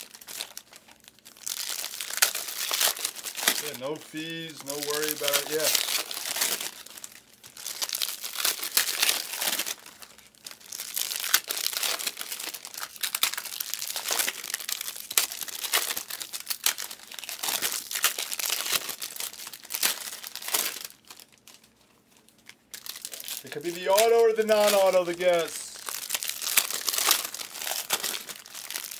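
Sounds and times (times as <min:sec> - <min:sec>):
card packaging crinkling: 0:00.0 - 0:28.9.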